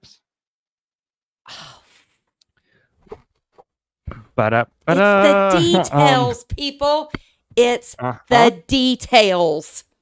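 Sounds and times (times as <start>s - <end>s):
person sighing: 4.1s - 6.3s.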